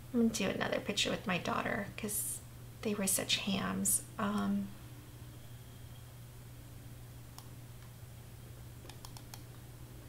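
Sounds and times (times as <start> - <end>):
steady low hum: 0.0 - 10.0
computer mouse clicks: 7.3 - 7.9, 8.8 - 9.6.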